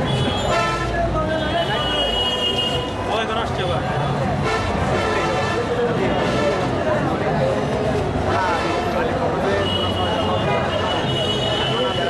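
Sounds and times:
vehicle horns: 0.0 - 3.1, 4.4 - 7.0, 8.4 - 12.0
crowd voices: 0.0 - 12.0.

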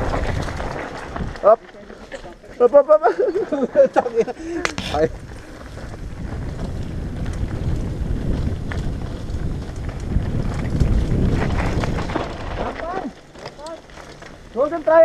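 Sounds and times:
wind buffeting microphone: 0.0 - 1.6, 3.0 - 15.0
bike tyres rumbling on dirt: 0.0 - 15.0.

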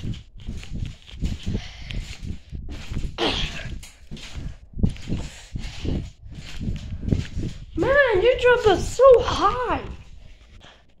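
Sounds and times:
child bouncing on mattress: 0.0 - 9.9
rustling: 0.0 - 10.8.

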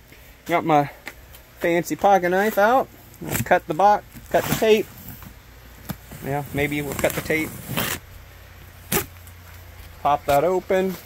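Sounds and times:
faint background noise: 0.0 - 11.0
knife cutting packing tape: 6.7 - 8.0, 8.9 - 9.2.

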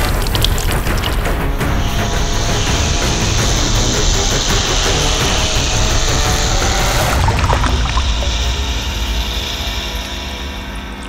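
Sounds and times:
deep low drone: 0.0 - 11.0
sustained hissing wash: 0.0 - 11.0.

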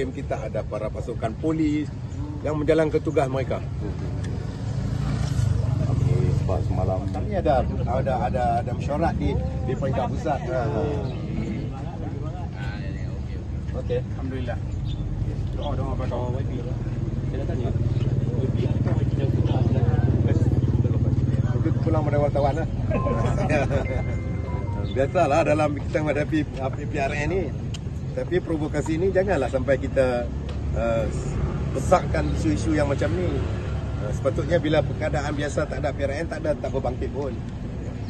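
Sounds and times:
vehicle engine rumble: 0.0 - 38.0
crowd voices: 3.4 - 29.3.

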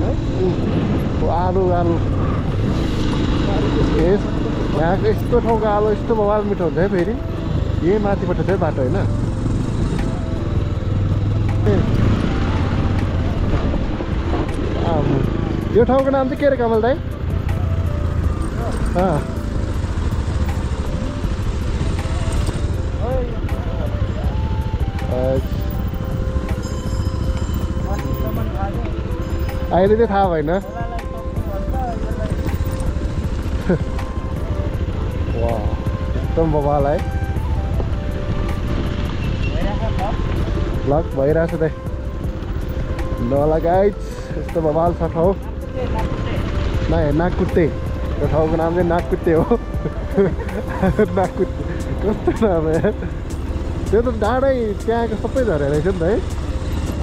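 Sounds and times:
background music with singing: 0.0 - 54.0
motorcycle engine running: 0.0 - 57.0
road and wind noise: 0.0 - 57.0.

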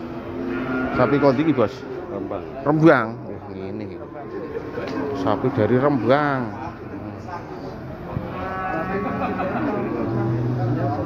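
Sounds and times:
cow mooing: 0.1 - 2.2, 4.9 - 7.4, 8.1 - 11.0.

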